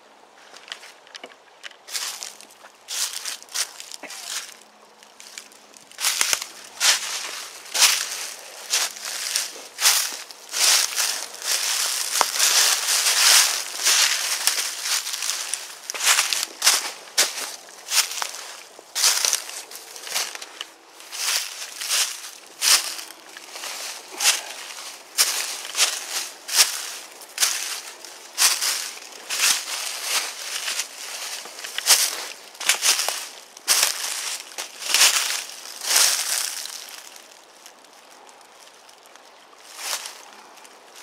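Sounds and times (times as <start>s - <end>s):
footsteps crunching through dry leaves: 1.9s - 41.0s.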